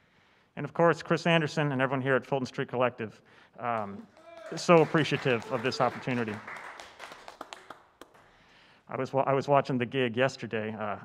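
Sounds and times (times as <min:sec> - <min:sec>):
scattered hand claps: 0:03.8 - 0:08.5.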